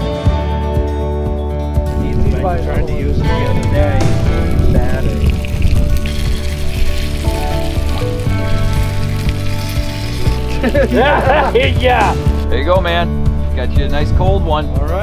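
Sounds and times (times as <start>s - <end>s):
background music: 0.0s - 15.0s
fish frying in butter: 4.6s - 12.5s.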